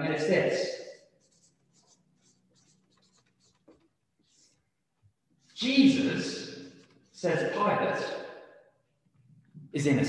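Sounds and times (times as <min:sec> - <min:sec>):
marker pen scratching on paper: 0:00.8 - 0:07.4.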